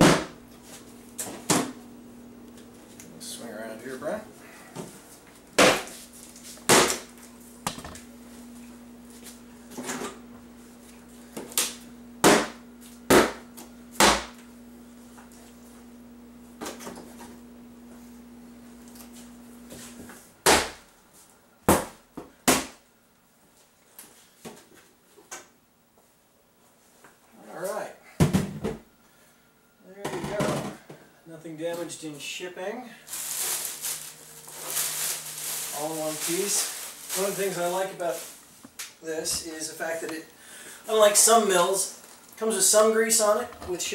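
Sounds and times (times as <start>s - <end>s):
steady low hum: 0.0s - 43.9s.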